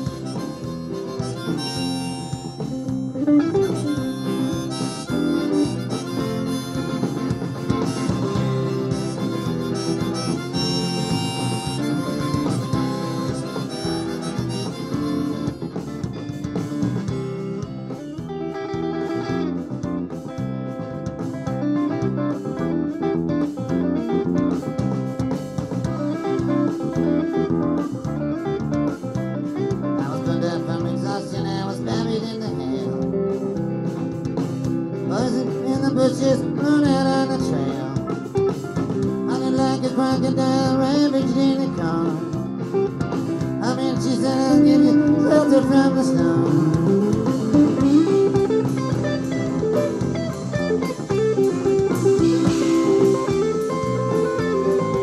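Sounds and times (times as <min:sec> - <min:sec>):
harmonica wailing: 0:00.0 - 0:55.0
live blues-rock band: 0:00.0 - 0:55.0.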